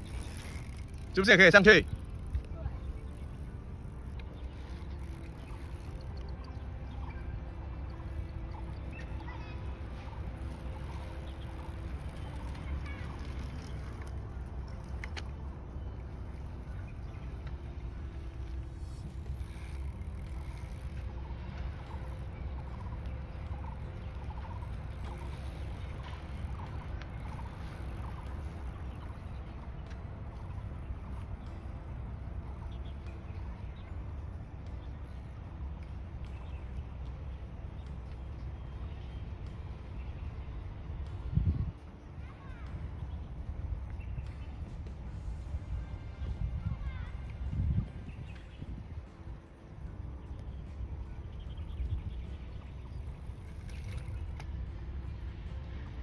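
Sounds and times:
steady low rumble: 0.0 - 56.0.

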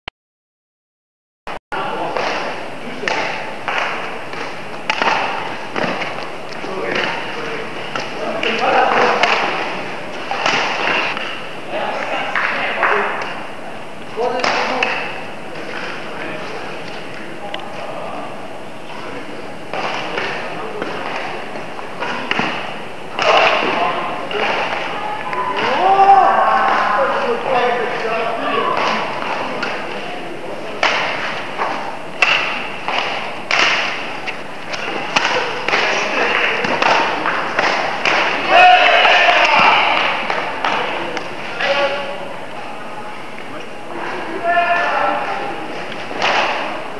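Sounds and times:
voices in a hall: 1.8 - 46.9
racket hitting shuttlecock: 2.1 - 6.3, 7.9 - 11.4, 19.7 - 25.0, 30.8 - 41.3, 46.0 - 46.8.

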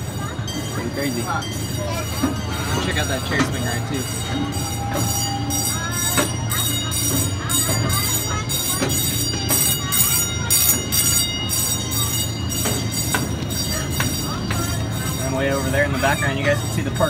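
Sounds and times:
small train droning: 0.0 - 17.0
train cars clacking on track: 0.0 - 17.0.

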